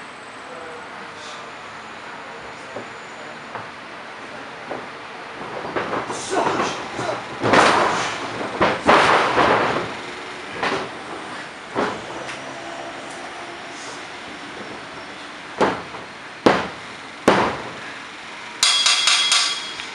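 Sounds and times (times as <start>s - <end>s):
metallic ringing clatter: 18.6s - 19.9s.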